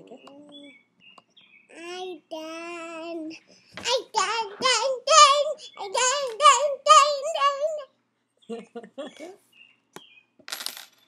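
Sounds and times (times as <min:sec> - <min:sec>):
little girl singing wordless notes: 0:01.7 - 0:08.0.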